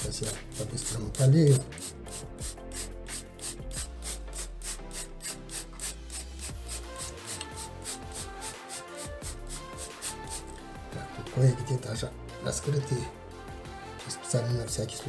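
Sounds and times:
spray bottle hissing mist: 0.0s - 10.7s.

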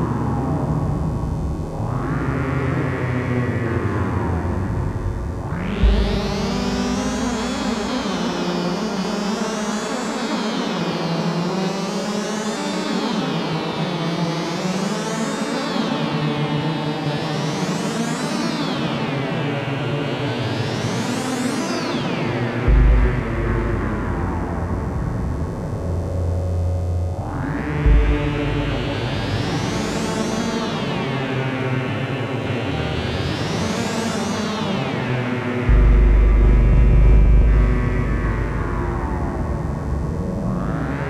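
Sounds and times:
electronic synthesizer music: 4.8s - 9.2s, 27.8s - 30.4s
low kick drum thump: 5.2s - 8.4s, 22.7s - 24.2s, 27.8s - 29.1s, 35.7s - 38.4s.

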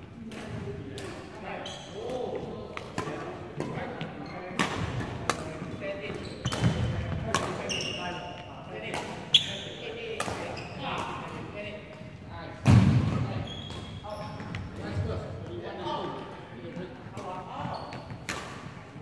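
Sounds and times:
voices in a large hall: 0.0s - 19.0s
shoes squeaking: 6.0s - 8.5s, 13.3s - 15.0s, 17.5s - 18.3s
racket striking shuttlecock: 18.2s - 18.7s.

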